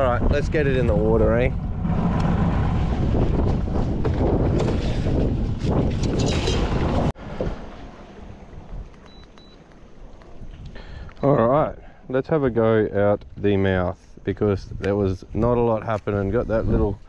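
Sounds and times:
wind buffeting microphone: 0.0 - 9.2, 12.6 - 17.0
breeze and water: 0.8 - 12.4.

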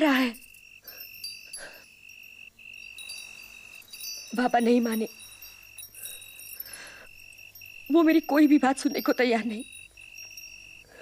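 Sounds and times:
high-pitched ringing tone: 0.0 - 11.0.

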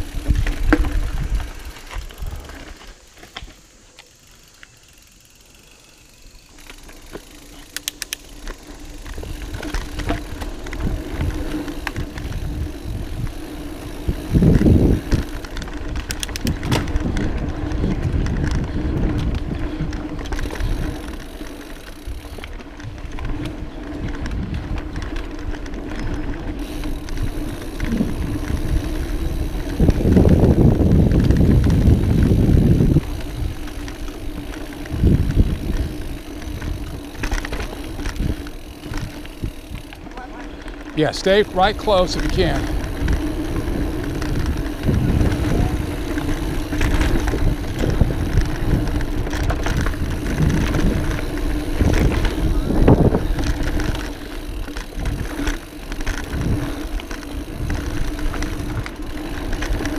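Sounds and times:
wind on microphone: 0.0 - 2.6, 9.1 - 21.2, 26.7 - 39.9, 41.6 - 59.9
bike rattling over bumps: 0.0 - 59.9
bike tyre rumble: 0.0 - 59.9.

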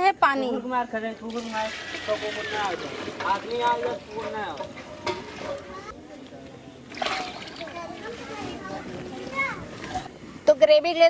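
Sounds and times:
water pouring and splashing: 1.3 - 5.9, 6.9 - 9.1.

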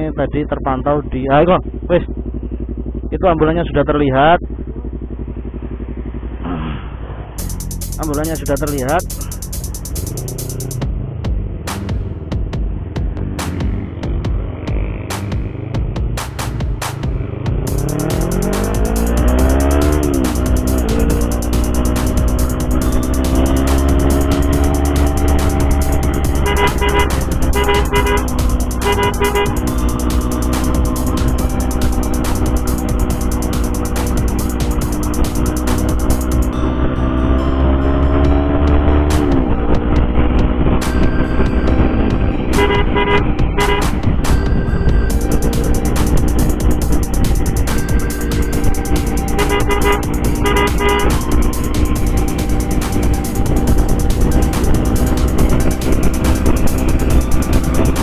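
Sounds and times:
motorcycle engine accelerating: 0.0 - 58.0
rapid horn toots: 17.6 - 58.0.

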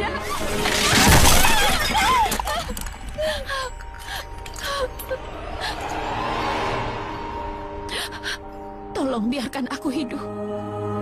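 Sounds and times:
loud shattering crash: 0.2 - 2.9
person crying and gasping: 1.7 - 5.8.

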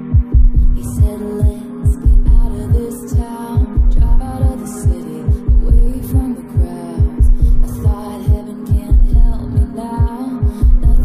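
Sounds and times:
pop song with throbbing beat: 0.0 - 11.0
steady hum tone: 0.0 - 11.0
synth chords: 0.0 - 11.0.

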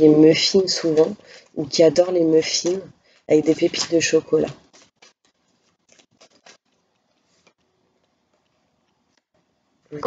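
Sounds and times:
cards rustling and flicking: 2.5 - 9.3.

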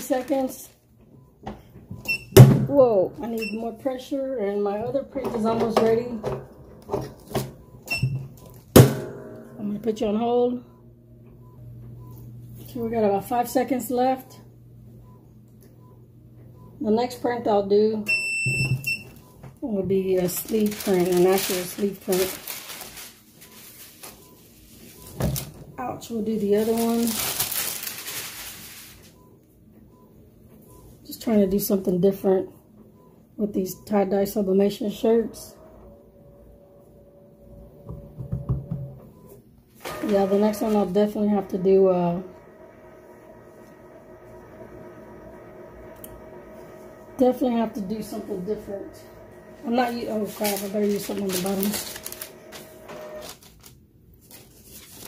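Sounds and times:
paper rustling: 20.1 - 25.6, 26.4 - 29.2, 49.9 - 55.0.

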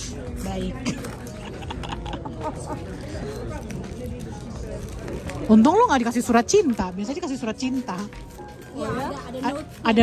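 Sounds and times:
chatter of diners: 0.0 - 10.0.

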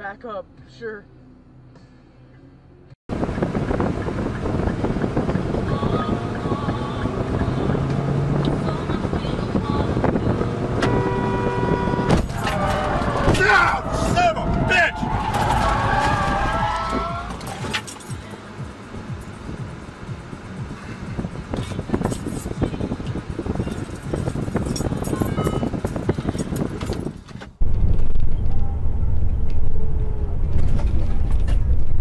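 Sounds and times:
road and wind noise inside car: 0.0 - 32.0
truck cab low rumble: 0.0 - 32.0.

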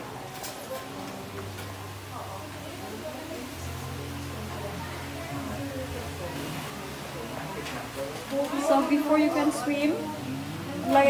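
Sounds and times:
faint background voices: 0.0 - 11.0
low steady hum: 1.2 - 11.0.

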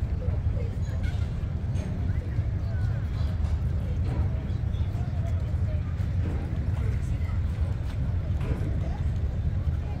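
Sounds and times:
boat engine rumbling: 0.0 - 10.0
faint chatter of passengers: 0.0 - 10.0.

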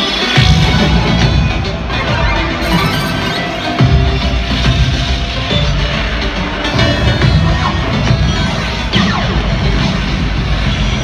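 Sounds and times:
loud intro music with heavy bass: 0.0 - 11.0.

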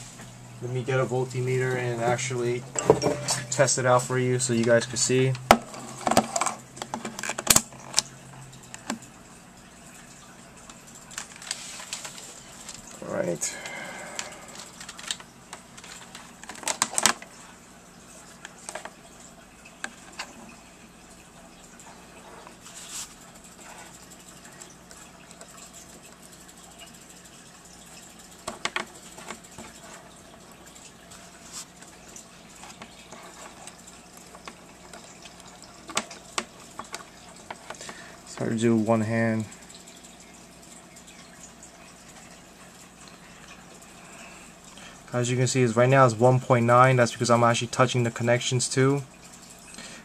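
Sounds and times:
faint steady hum: 0.0 - 50.0.

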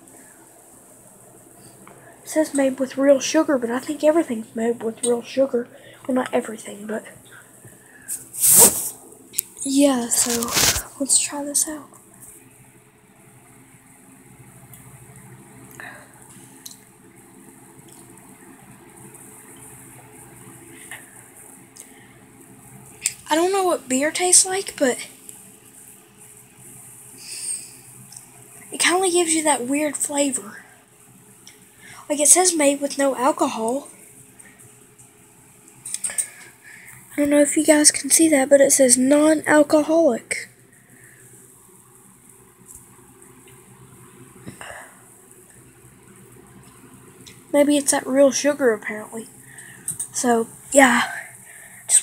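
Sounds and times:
low electrical hum: 0.0 - 52.0.

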